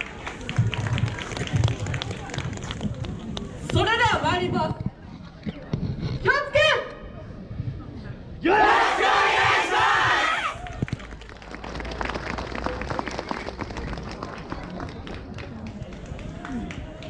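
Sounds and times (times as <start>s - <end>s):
people clapping: 0.0s - 3.8s, 10.6s - 17.0s
group shouting a call: 8.4s - 10.6s.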